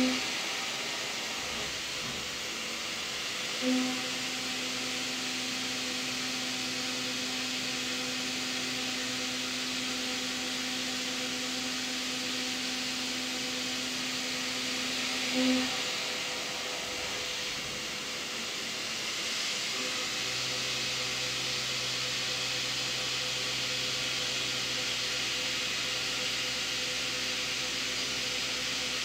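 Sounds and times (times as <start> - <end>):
steady hiss: 0.0 - 7.2, 13.1 - 23.8
milling machine low hum: 0.0 - 29.0.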